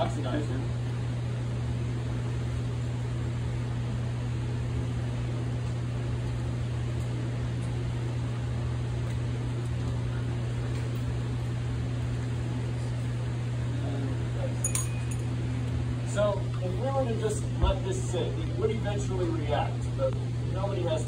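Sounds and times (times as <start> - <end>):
exhaust fan humming: 0.0 - 21.0.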